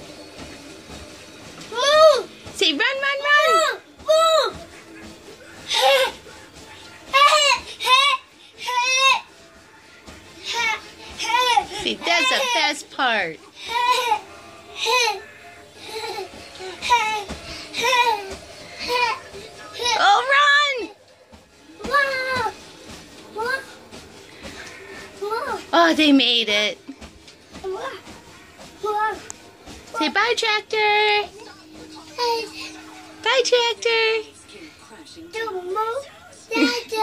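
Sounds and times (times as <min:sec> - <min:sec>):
faint tv music: 0:00.0 - 0:37.0.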